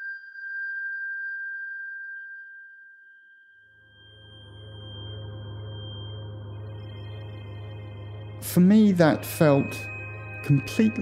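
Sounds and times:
steady high-pitched tone: 0.0s - 11.0s
low musical drone: 3.9s - 11.0s.

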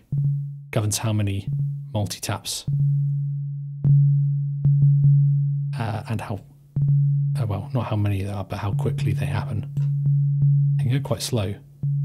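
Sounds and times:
low sine-like synth tone: 0.0s - 0.8s, 1.4s - 2.0s, 2.6s - 12.0s.

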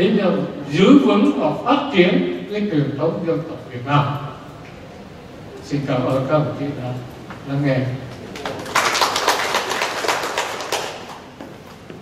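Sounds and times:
audience applauding: 8.1s - 11.4s.

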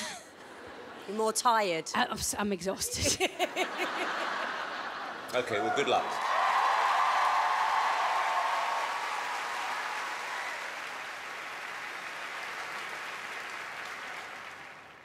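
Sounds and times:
studio audience applauding: 5.3s - 15.0s.

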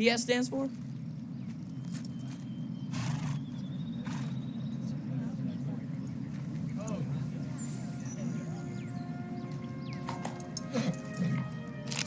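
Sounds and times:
horse whinny: 2.9s - 4.4s
horse snorting: 2.9s - 4.5s
crowd murmur: 4.3s - 12.0s.

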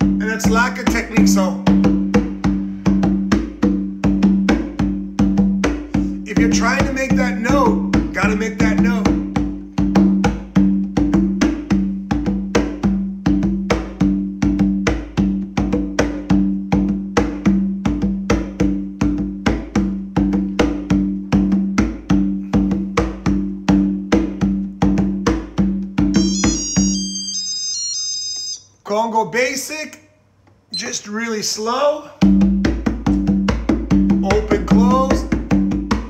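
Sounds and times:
conga drum played by hand: 0.0s - 28.6s, 32.2s - 36.0s.

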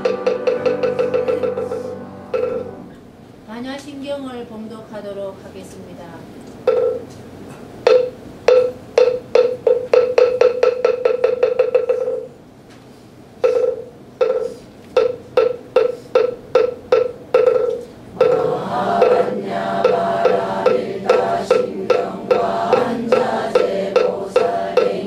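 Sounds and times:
wooden fish strikes: 13.4s - 25.0s.

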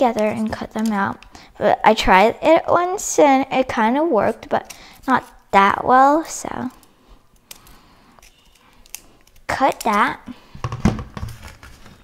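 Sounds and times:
scissors snipping paper: 6.6s - 10.2s.

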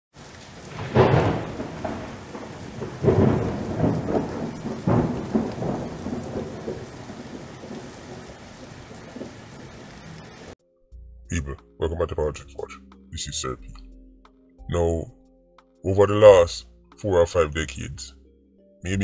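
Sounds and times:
steady rain: 0.1s - 10.6s
thunder rolling: 0.5s - 10.6s.

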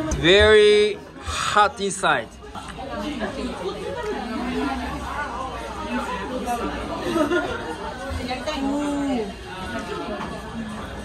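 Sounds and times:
overlapping voices chattering: 0.0s - 11.0s.

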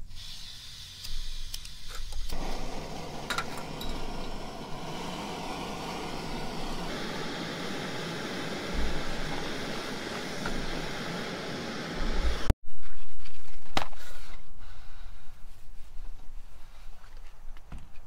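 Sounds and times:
stove burner hissing: 0.0s - 12.6s.

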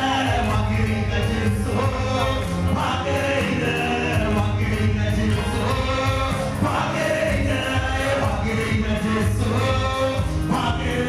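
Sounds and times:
gospel choir singing: 0.0s - 11.0s
steady low bass: 0.0s - 11.0s.

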